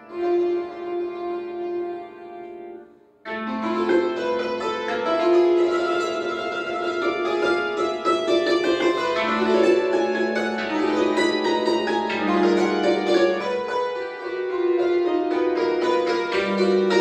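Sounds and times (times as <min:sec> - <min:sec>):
cimbalom played with mallets: 0:03.3 - 0:17.0.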